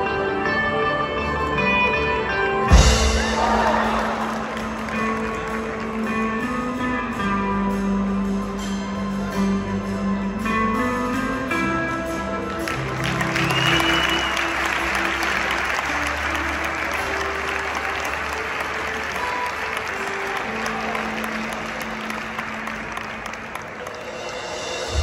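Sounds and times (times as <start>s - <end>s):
backing music: 0.0s - 25.0s
audience applauding: 2.7s - 6.7s, 12.4s - 25.0s
high whistle: 13.3s - 14.8s.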